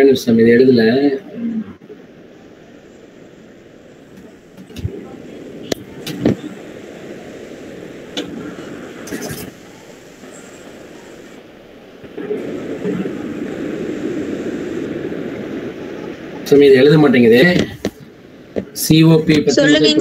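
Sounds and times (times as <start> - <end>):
muffled voices over video call: 18.6 - 20.0.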